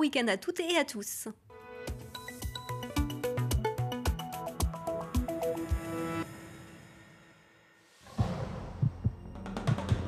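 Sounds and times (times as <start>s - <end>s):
deep bass thumps: 8.2s - 9.3s.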